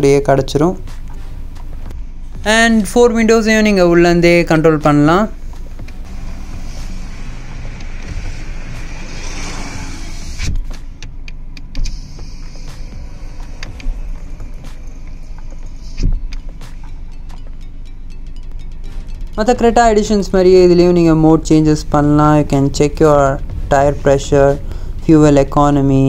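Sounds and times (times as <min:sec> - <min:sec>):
power window motor running: 0:05.8 - 0:10.8.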